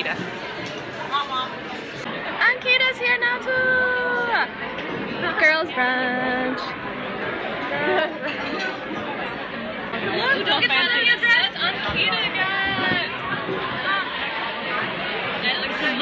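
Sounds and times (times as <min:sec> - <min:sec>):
babble of busy dining hall: 0:00.0 - 0:16.0
people chattering: 0:00.0 - 0:16.0.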